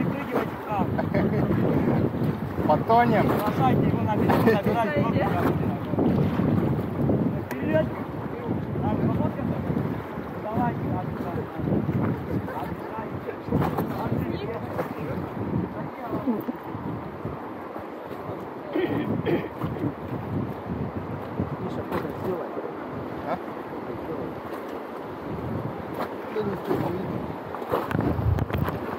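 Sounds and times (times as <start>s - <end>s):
wind buffeting microphone: 0.0s - 28.9s
river water rushing: 9.7s - 28.9s.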